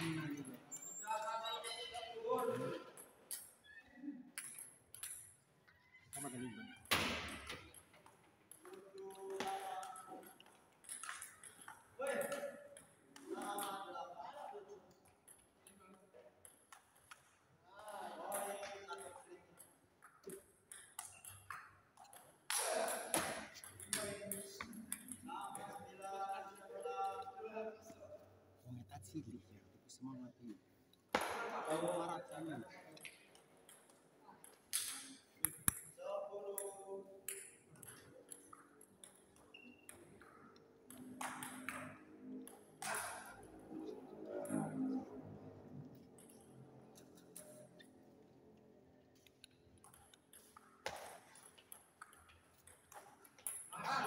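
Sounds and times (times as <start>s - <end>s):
table tennis ball hits: 6.2s - 13.7s, 20.0s - 25.7s, 31.1s - 32.0s, 40.9s - 43.4s, 49.9s - 53.7s.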